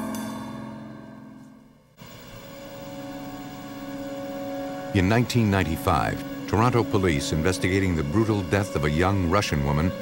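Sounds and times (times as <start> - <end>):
background music: 0.0 - 10.0
low drone of steady tones: 0.0 - 10.0.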